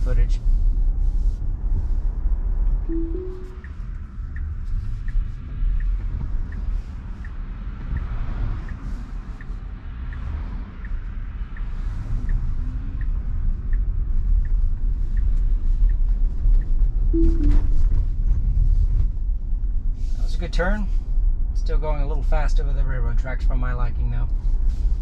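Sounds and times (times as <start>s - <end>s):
cabin road rumble: 0.0s - 25.0s
turn signal ticking: 2.9s - 17.8s.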